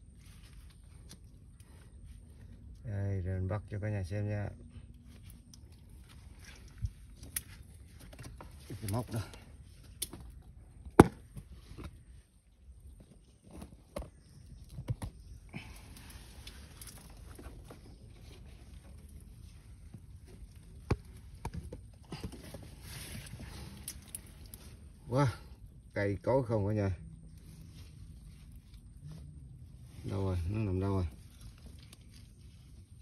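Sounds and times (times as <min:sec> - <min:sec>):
soft rustling through roots: 0:00.0 - 0:33.0.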